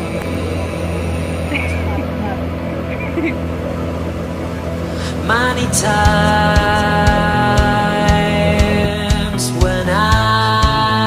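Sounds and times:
wavering high sounds: 0.0 - 10.4
water noise: 0.0 - 10.7
outboard motor running: 0.0 - 11.0.

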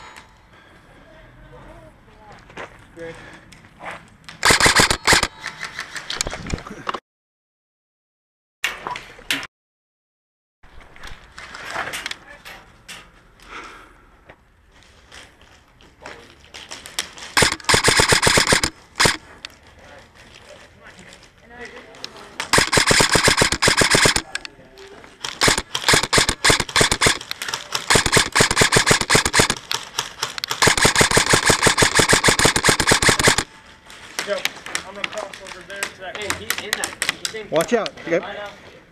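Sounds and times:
airsoft guns firing bursts: 4.4 - 5.3, 17.4 - 19.2, 22.4 - 24.4, 25.2 - 33.5.

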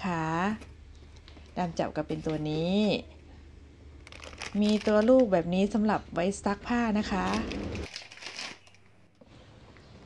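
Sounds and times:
plastic packaging crinkling: 4.0 - 5.4, 7.0 - 9.2.

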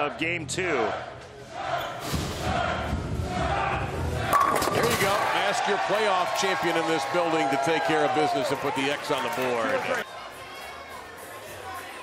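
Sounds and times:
crowd voices: 1.0 - 12.0
bowling pins crashing: 4.3 - 5.3.

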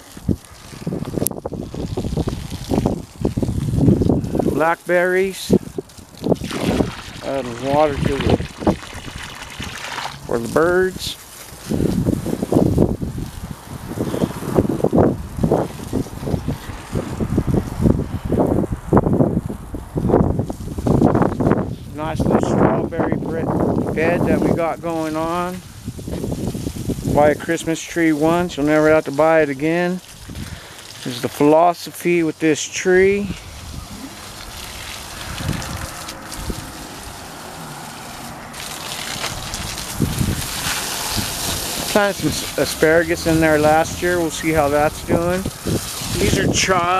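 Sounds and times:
hose water splashing onto soil: 0.0 - 18.7, 19.4 - 46.9
wind buffeting microphone: 0.0 - 31.0, 32.9 - 46.9.

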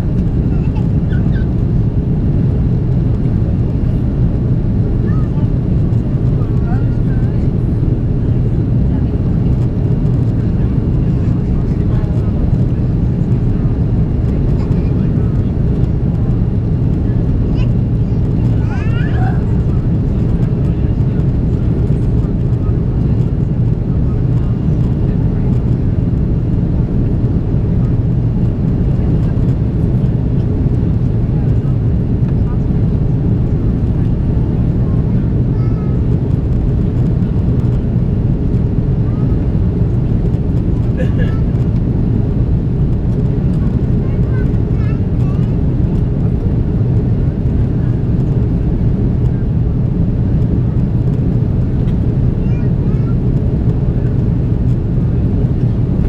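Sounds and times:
airliner cabin engine rumble: 0.0 - 56.0.

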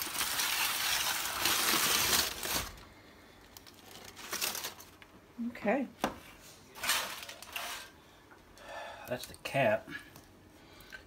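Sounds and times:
aluminium foil crinkling: 0.0 - 5.1, 6.8 - 7.9.

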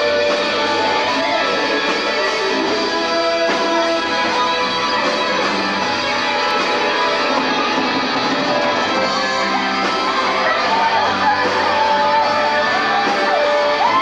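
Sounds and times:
rock band accompaniment: 0.0 - 14.0.

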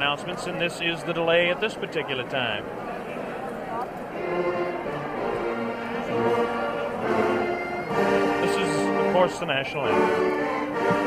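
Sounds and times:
slow orchestral music with brass: 4.2 - 11.0.

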